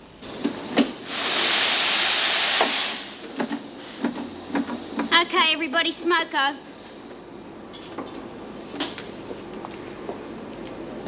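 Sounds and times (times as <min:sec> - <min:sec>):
steam press hissing: 0:00.3 - 0:05.0.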